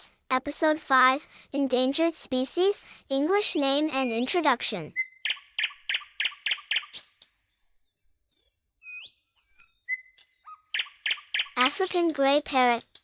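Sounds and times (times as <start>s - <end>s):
bird chirps: 4.0s - 11.9s
high bird whistles: 4.9s - 11.8s.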